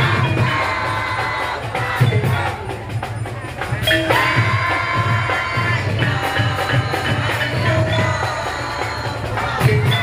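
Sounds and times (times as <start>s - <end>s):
crowd cheering and shouting: 0.0s - 10.0s
drum band pulsing beat: 0.0s - 10.0s.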